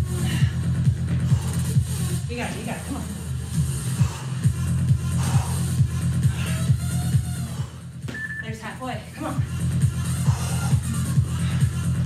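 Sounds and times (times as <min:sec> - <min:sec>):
short high beep: 0:08.1 - 0:08.5.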